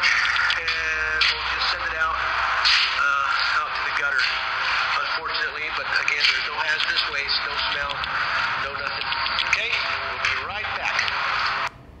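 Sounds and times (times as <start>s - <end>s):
man speaking through small speaker: 0.0s - 2.2s, 2.9s - 11.4s.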